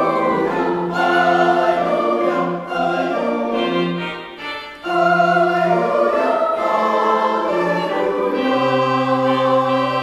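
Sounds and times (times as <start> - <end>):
choir singing held chords: 0.0 - 10.0.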